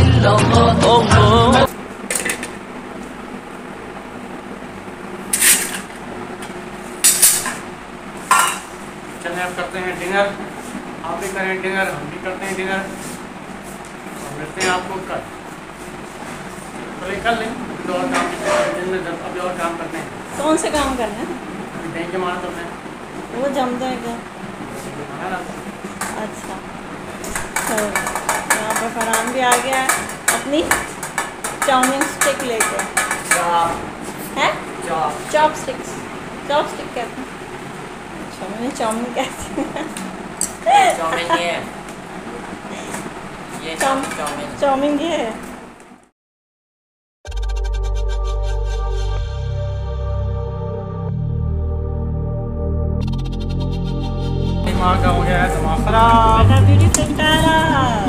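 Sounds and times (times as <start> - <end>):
low room hum and hiss: 0.0 - 46.1.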